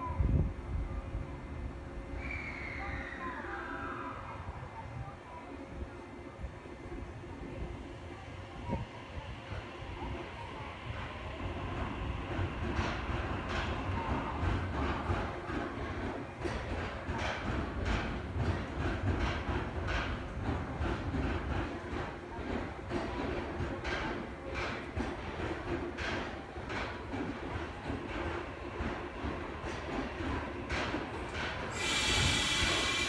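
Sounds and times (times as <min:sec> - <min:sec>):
electric train rumbling: 0:00.0 - 0:33.0
wheels squealing with hiss: 0:02.2 - 0:04.2, 0:31.7 - 0:33.0
wheels clacking on rail: 0:09.4 - 0:33.0.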